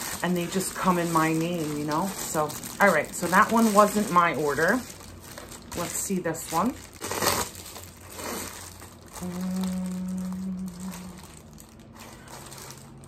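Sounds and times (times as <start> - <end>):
plastic bag tearing and crinkling: 0.0 - 13.0
steady hummed tone: 0.0 - 13.0.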